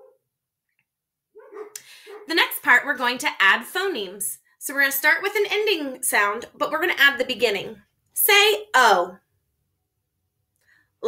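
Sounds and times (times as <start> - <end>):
dog whining: 1.4 - 2.3.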